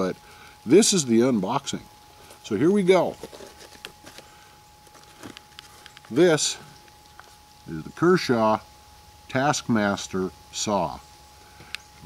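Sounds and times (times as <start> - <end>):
plastic blister pack rustling: 2.2 - 6.2.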